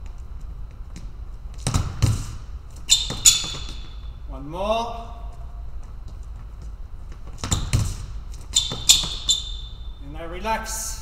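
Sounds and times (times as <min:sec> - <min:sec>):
heavy foot thuds: 0:00.7 - 0:04.3, 0:05.2 - 0:09.9
sharp shoe squeaks: 0:02.8 - 0:04.2, 0:07.4 - 0:10.0.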